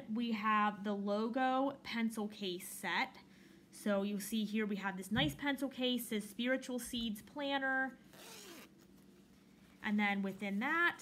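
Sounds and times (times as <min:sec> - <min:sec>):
zipper pulled open: 0:08.0 - 0:09.1.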